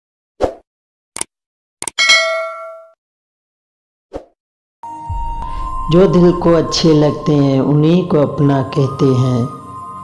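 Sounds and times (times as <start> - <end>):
bell-like ding: 2.0 - 3.0.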